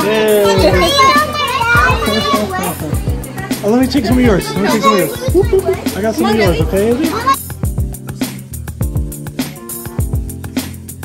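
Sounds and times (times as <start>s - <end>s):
children's excited chatter: 0.0s - 7.5s
music playing: 0.0s - 11.0s.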